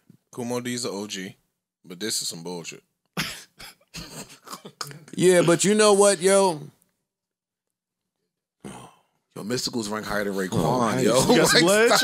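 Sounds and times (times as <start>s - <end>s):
person clearing throat: 3.2s - 5.1s.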